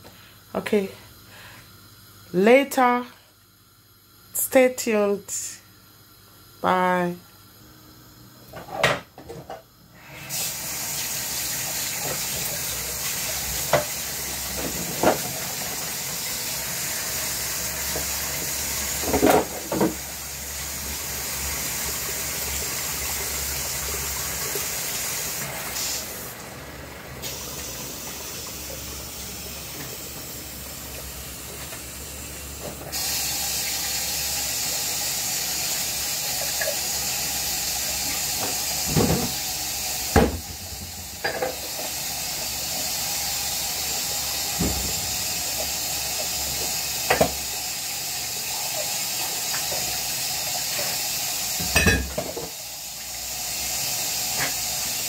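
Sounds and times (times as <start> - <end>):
tap running into sink: 11.7 - 15.8, 17.8 - 20.1, 38.0 - 42.0, 44.4 - 47.5, 51.6 - 52.6
dishes clinking against sink: 40.2 - 41.6, 51.6 - 52.6.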